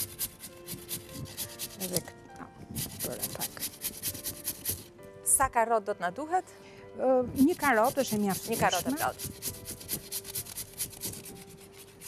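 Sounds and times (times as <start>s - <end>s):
carrot rasping on a grater: 0.0s - 2.0s, 2.8s - 4.9s, 7.4s - 12.0s.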